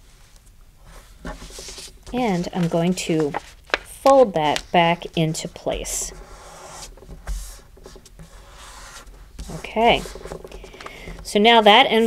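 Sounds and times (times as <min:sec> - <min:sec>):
paper rustling and scraping: 0:00.9 - 0:12.0
fingers rubbing paper envelope: 0:01.3 - 0:12.0.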